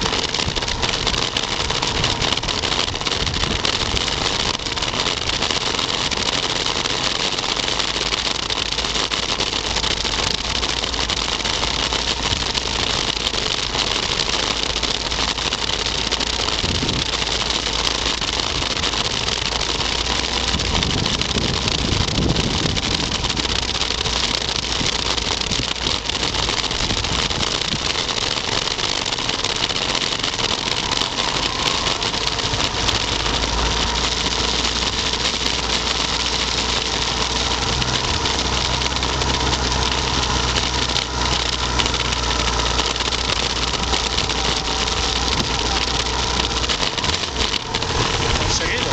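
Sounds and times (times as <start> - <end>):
constant rushing noise: 0.0 - 48.9
low steady engine hum: 0.0 - 48.9
motorcycle engine running: 29.3 - 48.9.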